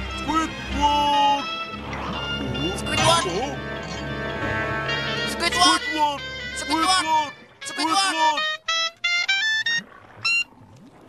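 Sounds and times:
clarinet playing short notes: 0:04.9 - 0:10.5.

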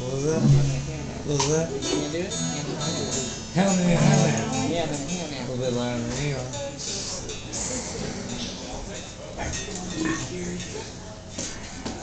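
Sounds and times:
indistinct voices: 0:00.0 - 0:10.4.

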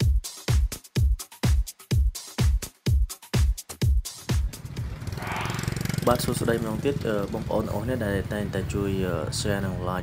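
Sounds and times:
electronic dance music: 0:05.2 - 0:05.8.

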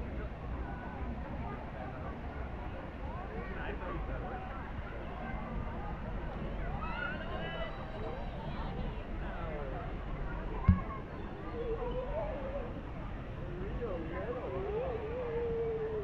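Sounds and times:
indistinct chatter: 0:00.0 - 0:16.0
short thump: 0:10.6 - 0:11.1.

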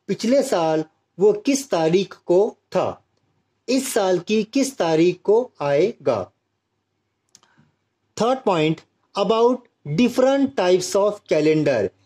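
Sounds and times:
person speaking: 0:00.0 - 0:06.4, 0:07.2 - 0:12.0
faint click: 0:07.2 - 0:07.8.

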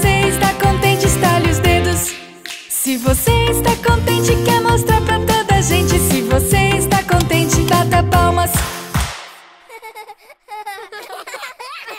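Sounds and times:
children's song: 0:00.0 - 0:10.0
cartoon children giggling: 0:09.6 - 0:11.9.

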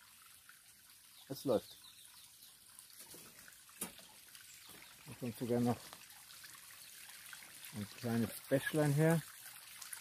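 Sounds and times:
faint water trickle: 0:00.0 - 0:10.0.

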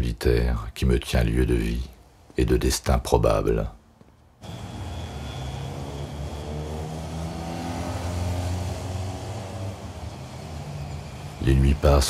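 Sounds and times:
street traffic: 0:01.5 - 0:02.5, 0:03.5 - 0:12.0
car engine running: 0:04.4 - 0:11.3.

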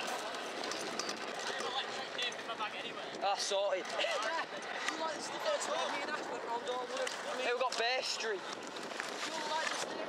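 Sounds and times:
scooter wheels rolling on tarmac: 0:00.0 - 0:10.0.

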